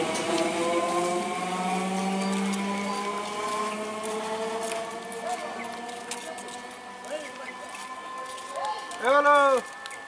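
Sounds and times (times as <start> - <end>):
train traction motors whining: 0.0 - 10.0.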